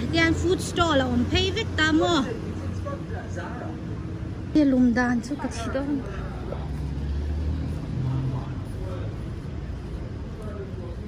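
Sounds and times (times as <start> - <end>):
faint voices: 0.0 - 11.0
motor vehicle engine rumble: 0.0 - 11.0.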